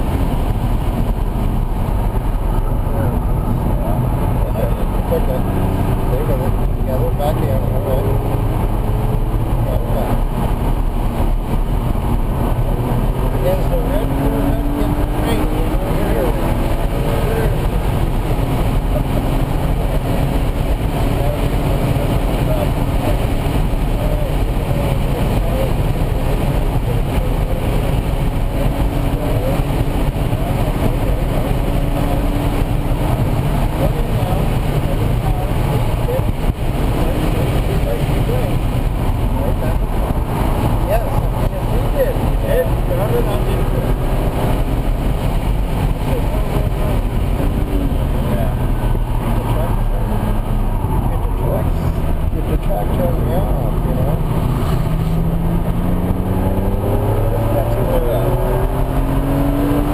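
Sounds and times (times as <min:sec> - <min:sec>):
car engine revving: 0:00.0 - 0:59.9
road and wind noise: 0:00.0 - 0:59.9.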